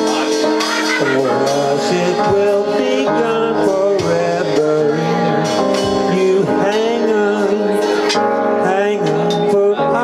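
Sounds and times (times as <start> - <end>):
electric keyboard chords: 0.0 - 10.0
man singing long notes: 0.0 - 10.0.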